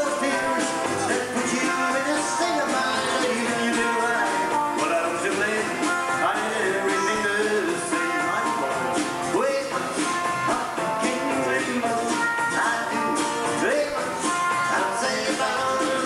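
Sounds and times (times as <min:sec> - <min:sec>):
drum kit: 0:00.0 - 0:16.0
strummed guitars: 0:00.0 - 0:16.0.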